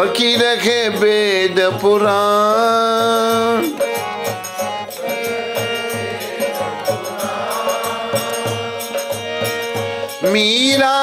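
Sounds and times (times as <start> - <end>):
harmonium holding a chord: 0.0 - 11.0
drum beat: 1.8 - 9.2.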